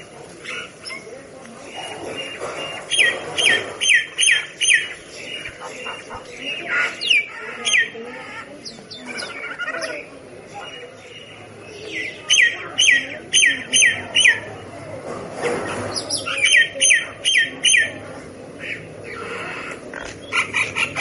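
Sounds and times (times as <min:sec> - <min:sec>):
myna calling: 0:01.8 - 0:14.6, 0:15.7 - 0:21.0.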